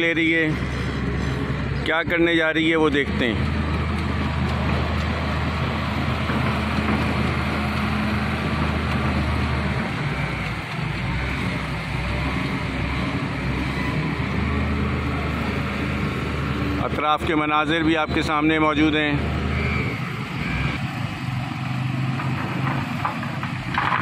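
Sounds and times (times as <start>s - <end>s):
excavator diesel engine running: 0.0s - 24.0s.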